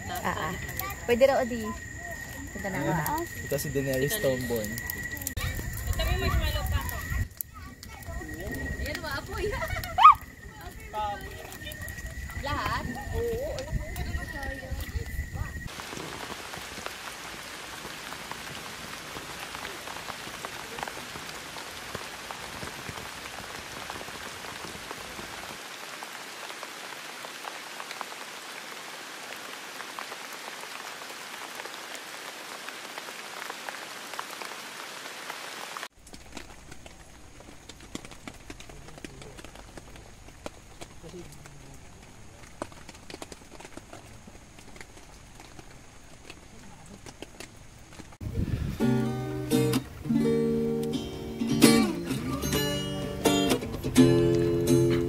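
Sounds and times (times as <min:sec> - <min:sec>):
voices around a campfire: 0:00.0 - 0:26.6, 0:36.0 - 0:55.0
rain falling on a tent: 0:00.0 - 0:55.0.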